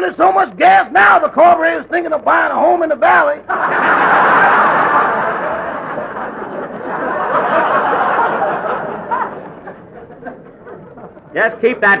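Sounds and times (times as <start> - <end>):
audience laughter: 3.4 - 11.4.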